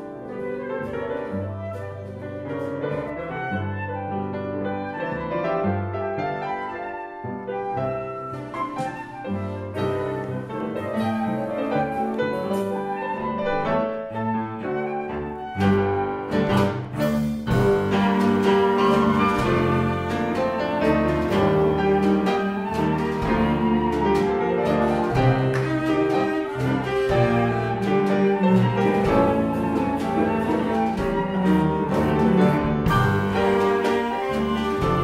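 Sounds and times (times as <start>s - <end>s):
double bass: 0.0s - 35.0s
piano chords: 0.0s - 35.0s
cello sustained notes: 17.4s - 35.0s.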